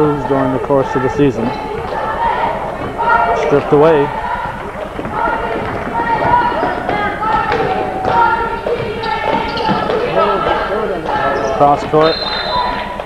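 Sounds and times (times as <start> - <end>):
background voices: 0.0 - 13.0
basketball dribbling on wooden floor: 2.8 - 12.0.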